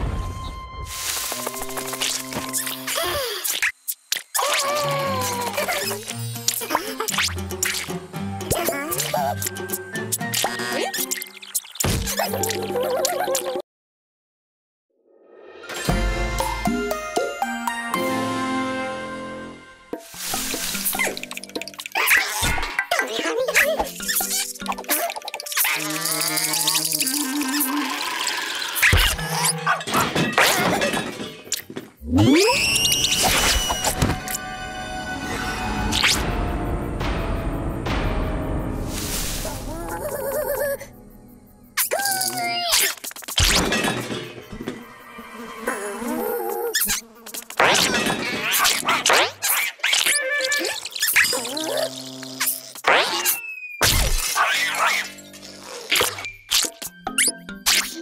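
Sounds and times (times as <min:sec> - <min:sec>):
cartoon character crying out: 0:04.4 - 0:06.0, 0:39.6 - 0:40.9
cartoon music: 0:04.5 - 0:11.4, 0:39.5 - 0:41.0, 0:54.5 - 0:58.0
plinky drip-like pips: 0:08.6 - 0:13.5, 0:20.6 - 0:27.6.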